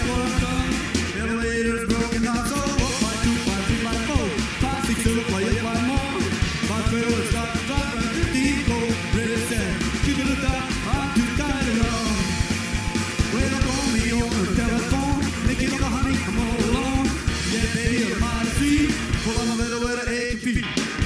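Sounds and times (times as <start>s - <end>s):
rockabilly band playing: 0.0s - 21.0s.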